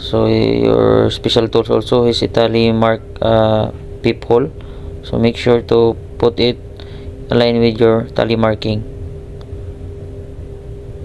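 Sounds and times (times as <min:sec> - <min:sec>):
machinery hum: 0:00.0 - 0:11.0.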